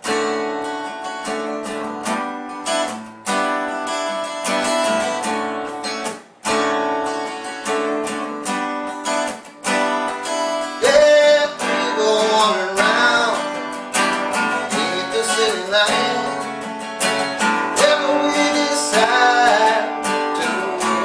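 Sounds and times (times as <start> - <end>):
acoustic guitar strumming: 0.0 - 21.0
man singing: 10.8 - 21.0.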